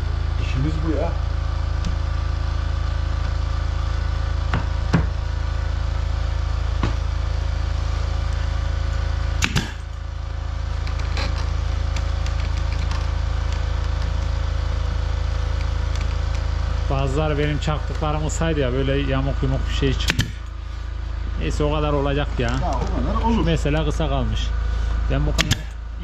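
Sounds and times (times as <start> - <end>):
air compressor humming: 0.0 - 26.0
pneumatic nailer firing: 9.4 - 9.9, 20.0 - 20.5, 25.4 - 25.8.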